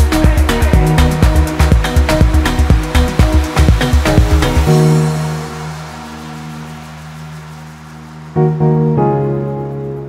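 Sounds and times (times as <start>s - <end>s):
held low synth chord: 0.0s - 10.0s.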